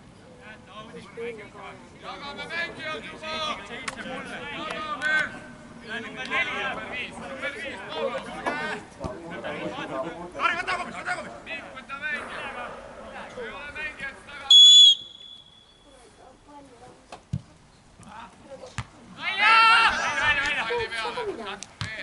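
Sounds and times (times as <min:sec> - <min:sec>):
referee whistle blast: 0:14.5 - 0:15.8
players shouting: 0:19.2 - 0:21.1.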